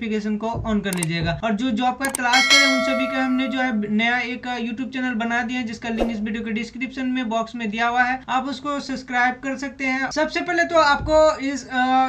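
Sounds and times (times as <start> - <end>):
short click: 2.0 - 3.8
bright bell chime: 2.1 - 4.0.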